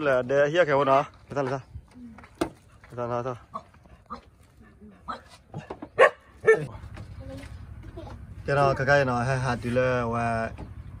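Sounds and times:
dog barking: 6.0s - 6.8s.

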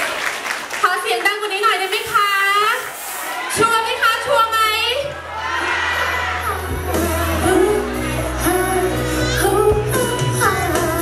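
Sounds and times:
pop backing track over loudspeakers: 1.5s - 11.0s
audience cheering and shouting: 2.2s - 11.0s.

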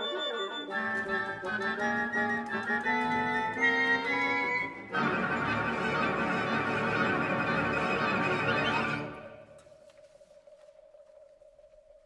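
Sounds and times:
symphony orchestra playing loudly: 0.0s - 9.5s.

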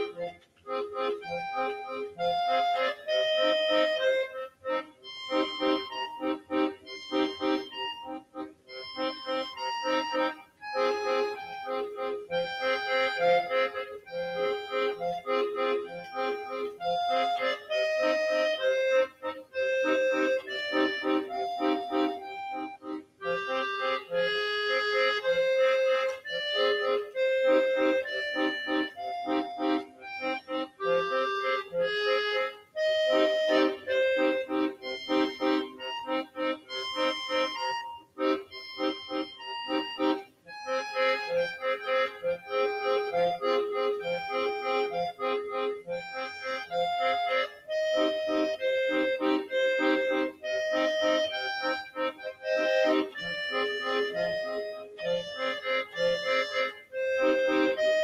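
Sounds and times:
solo accordion melody: 0.0s - 58.0s.

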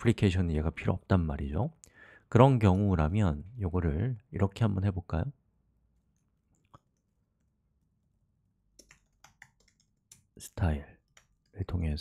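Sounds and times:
computer keyboard keystrokes: 8.8s - 10.4s, 11.0s - 11.5s.

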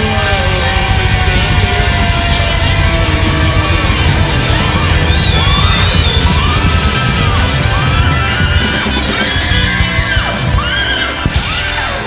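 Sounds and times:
high wailing bending notes: 0.0s - 12.0s
live rock band playing: 0.0s - 12.0s.

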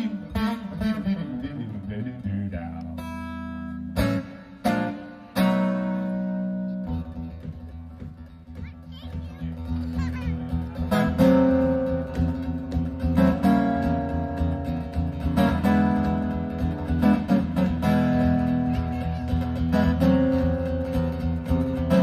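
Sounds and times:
acoustic guitar boogie-woogie: 0.0s - 22.0s.

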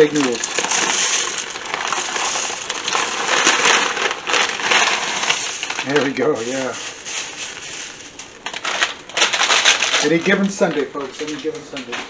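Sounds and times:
dry noodles rattling into a pot: 0.0s - 11.9s.

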